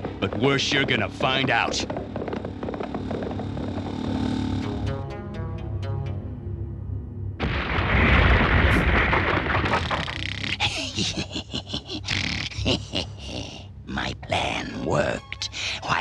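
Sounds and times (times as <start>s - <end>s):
gruff wordless voice: 10.0s - 16.0s.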